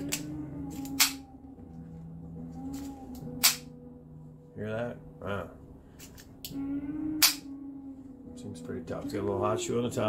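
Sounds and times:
spring clip snapping shut: 0:00.1 - 0:01.2.

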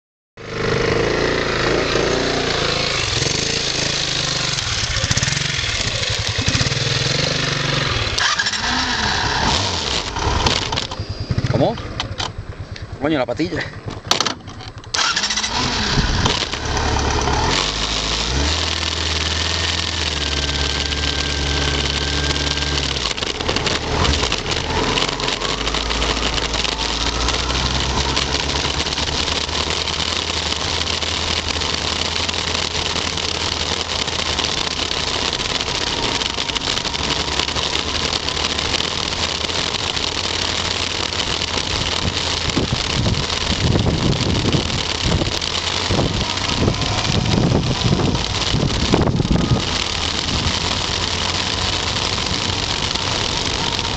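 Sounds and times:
motorcycle engine running: 0:00.4 - 0:53.9
wind rushing over microphone: 0:42.0 - 0:50.6.

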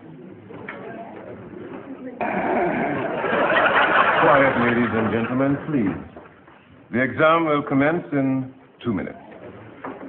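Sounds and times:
murmur of many voices: 0:00.0 - 0:10.0.

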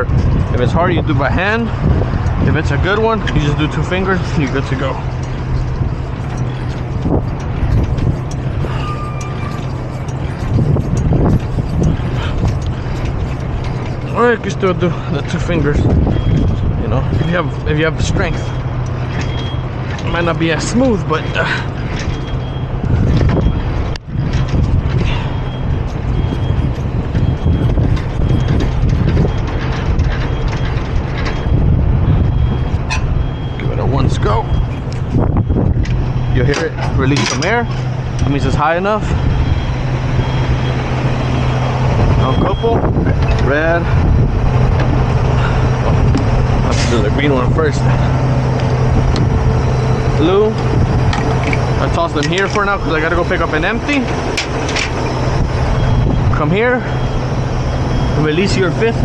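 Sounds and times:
diesel truck engine idling: 0:00.0 - 0:59.0
metal crank handle rattling: 0:00.0 - 0:59.0.

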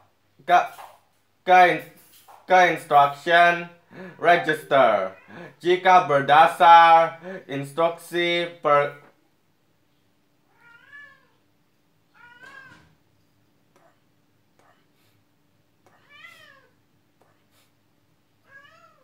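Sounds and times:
cat meowing faintly: 0:10.5 - 0:11.4, 0:12.1 - 0:13.0, 0:15.9 - 0:16.8, 0:18.4 - 0:19.0.

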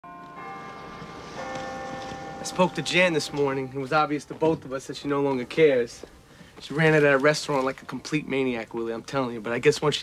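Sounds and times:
church bells ringing: 0:00.0 - 0:06.3.

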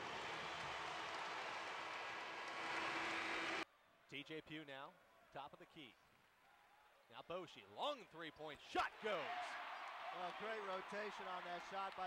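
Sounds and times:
arena crowd cheering: 0:00.0 - 0:03.6, 0:08.8 - 0:12.0.

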